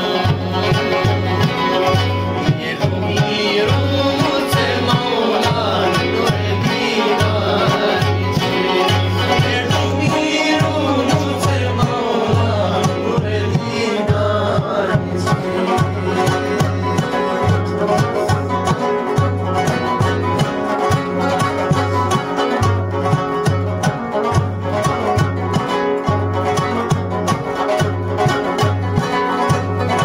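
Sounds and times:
frame drum beating: 0:00.0 - 0:30.0
plucked strings melody: 0:00.0 - 0:30.0.

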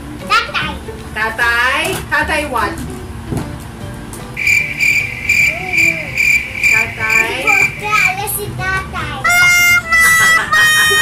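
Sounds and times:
child talking and giggling: 0:00.2 - 0:00.9, 0:05.5 - 0:06.3, 0:07.5 - 0:10.3
crickets chirping: 0:04.4 - 0:08.2.

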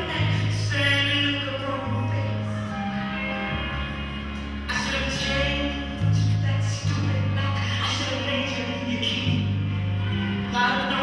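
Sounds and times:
music with deep bass line: 0:00.0 - 0:11.0.

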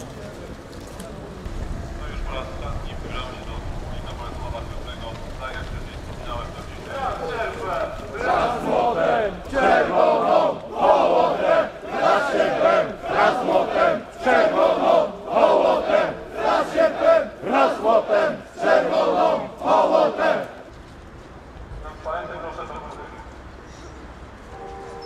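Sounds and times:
crowd chanting in unison: 0:08.1 - 0:20.6.

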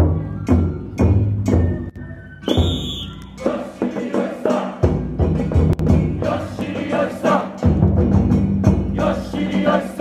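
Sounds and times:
high whistle-like tone: 0:00.1 - 0:03.6
big drums beating: 0:03.4 - 0:10.0.

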